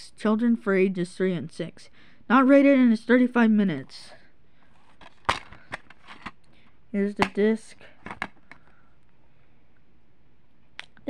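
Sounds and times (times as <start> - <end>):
plastic clicks of disc case: 4.7 - 8.8.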